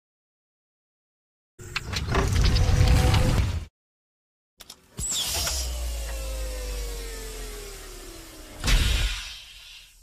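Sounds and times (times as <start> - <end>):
vault door mechanical whir: 4.8 - 9.8.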